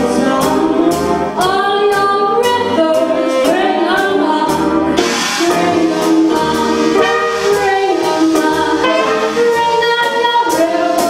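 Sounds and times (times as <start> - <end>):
piano: 0.0 - 11.0
woman singing: 0.0 - 11.0
trumpet: 2.8 - 11.0
trombone: 2.9 - 11.0
cymbal wash: 5.0 - 10.0
tenor saxophone: 5.0 - 10.6.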